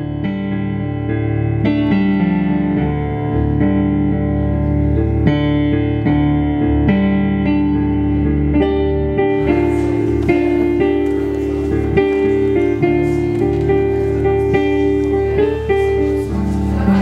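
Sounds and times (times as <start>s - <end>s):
slow piano chords and notes: 0.0s - 17.0s.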